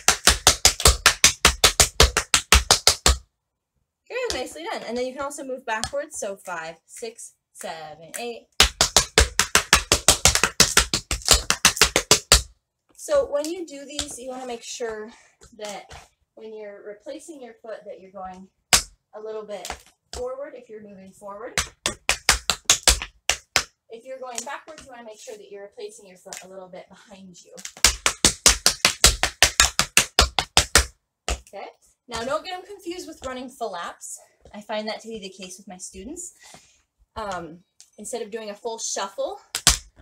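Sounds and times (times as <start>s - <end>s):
tap shoes on wooden board: 0.0s - 3.2s, 8.6s - 12.5s, 21.6s - 23.7s, 27.6s - 31.5s.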